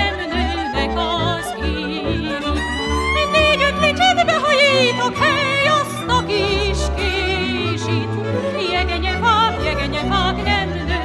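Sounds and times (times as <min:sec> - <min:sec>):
operatic melody with vibrato: 0:00.0 - 0:11.0.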